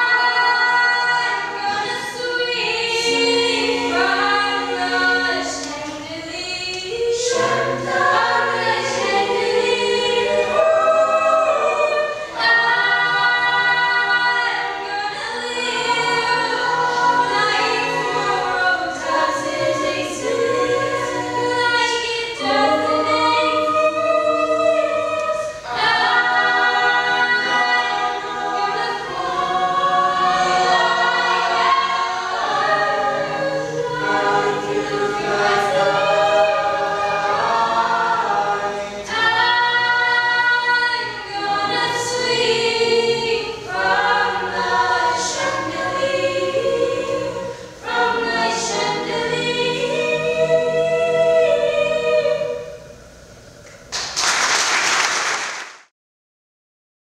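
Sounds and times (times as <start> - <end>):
choir singing in harmony: 0.0 - 53.6.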